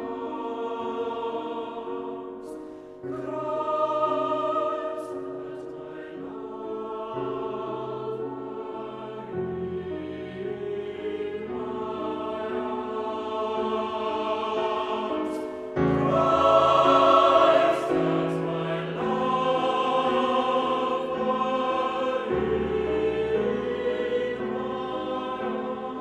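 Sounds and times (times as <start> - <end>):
choir singing held chords: 0.0 - 26.0.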